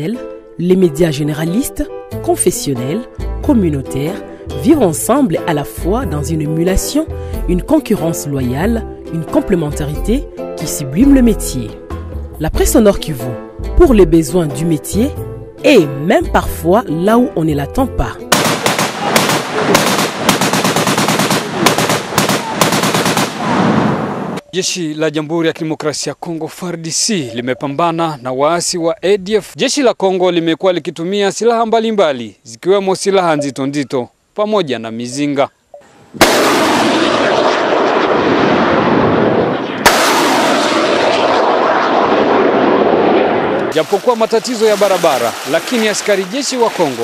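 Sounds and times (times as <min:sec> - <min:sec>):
automatic gunfire bursts: 0:18.3 - 0:23.6
sharp blast: 0:18.3 - 0:24.4, 0:36.2 - 0:44.2
single gunshots: 0:18.3 - 0:24.4, 0:36.2 - 0:43.9
rocket launcher rushing roar: 0:36.2 - 0:43.9.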